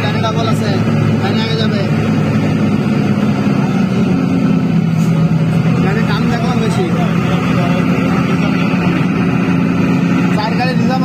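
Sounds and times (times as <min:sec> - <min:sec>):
road noise inside moving vehicle: 0:00.0 - 0:11.0
vehicle engine drone: 0:00.0 - 0:11.0.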